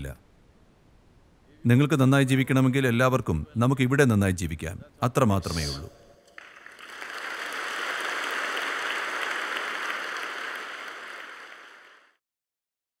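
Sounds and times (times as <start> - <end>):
audience applauding: 6.3 - 12.2.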